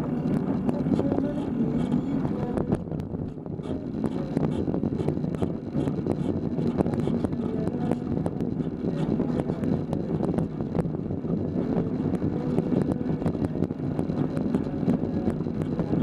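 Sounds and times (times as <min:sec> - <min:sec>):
tyre and drivetrain rumble: 0:00.0 - 0:16.0.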